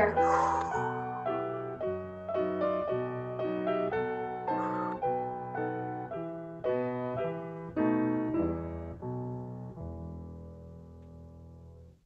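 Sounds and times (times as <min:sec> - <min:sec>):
slow solo piano: 0:00.0 - 0:12.0.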